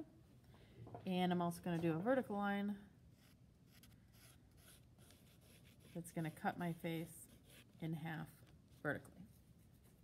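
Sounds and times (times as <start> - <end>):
pencil scratching on paper: 3.2 - 8.0.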